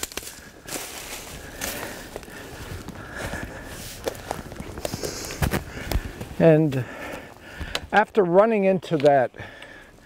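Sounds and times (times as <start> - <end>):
footsteps on dry leaves: 0.0 - 6.9.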